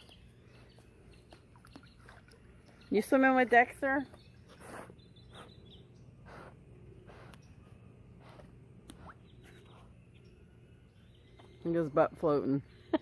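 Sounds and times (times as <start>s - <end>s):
dog paddling in water: 1.2s - 5.0s.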